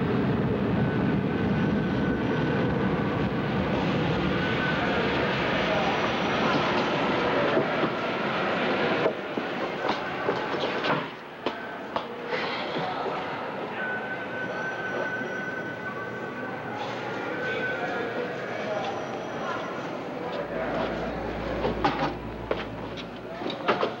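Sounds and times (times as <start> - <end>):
rumbling terminal background noise: 0.0 - 24.0
faint voices: 3.6 - 24.0.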